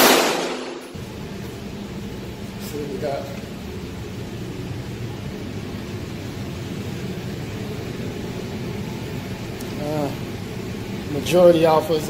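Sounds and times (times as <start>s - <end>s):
low rumble and hiss of room noise: 0.0s - 12.0s.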